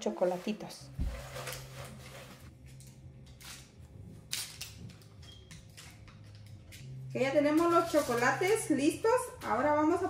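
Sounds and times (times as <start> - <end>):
foil wrappers crinkling: 7.6 - 8.8.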